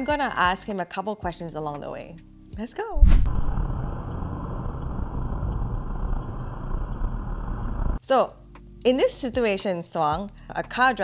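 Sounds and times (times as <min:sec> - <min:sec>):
car engine and road noise: 0:03.0 - 0:08.0.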